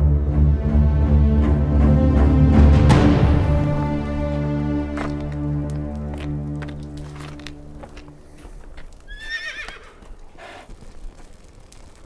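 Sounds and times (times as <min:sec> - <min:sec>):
horse whinnying: 0:09.1 - 0:10.7.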